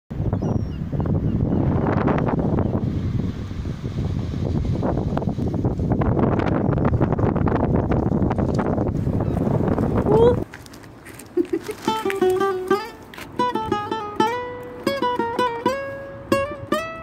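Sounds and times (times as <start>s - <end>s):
wind buffeting microphone: 0.1s - 17.0s
waves washing onto shingle: 2.8s - 6.0s.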